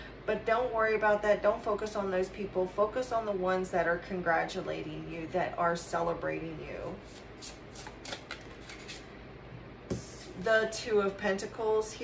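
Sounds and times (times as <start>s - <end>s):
cards shuffling and flicking: 7.1s - 9.0s.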